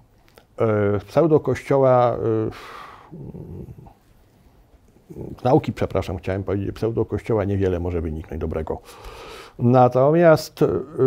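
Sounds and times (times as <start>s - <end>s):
man's throaty murmur: 2.3s - 4.0s.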